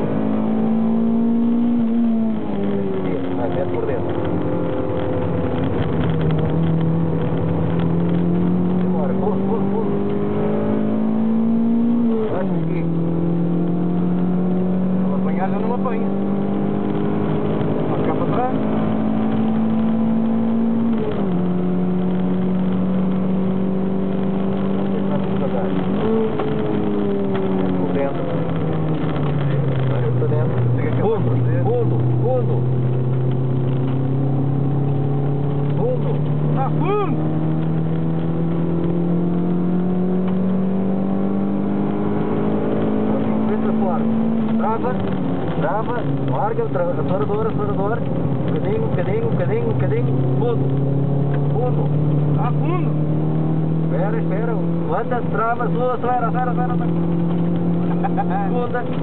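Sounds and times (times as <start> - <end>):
car engine revving under load: 0.0 - 59.0.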